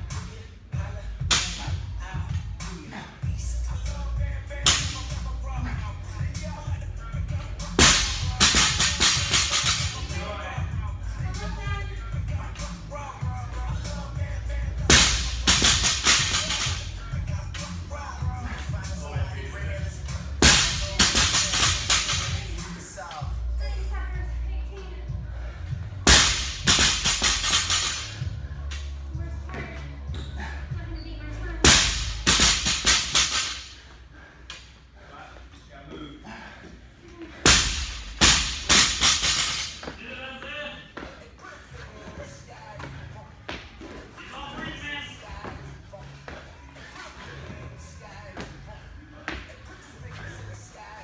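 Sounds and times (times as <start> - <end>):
music with vocals: 0.0 - 51.0.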